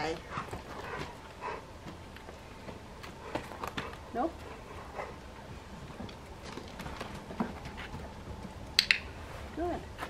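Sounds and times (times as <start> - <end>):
paws tapping on wooden pallet: 0.3 - 8.8.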